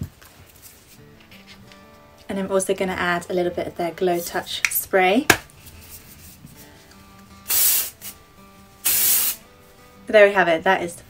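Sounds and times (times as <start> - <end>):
quiet background music: 0.0 - 11.0
hair spray can bursts: 7.5 - 8.2, 8.8 - 9.4.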